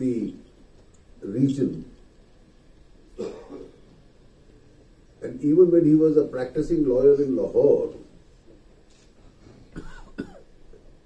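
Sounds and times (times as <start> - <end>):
person coughing: 3.2 - 3.8, 9.8 - 10.5.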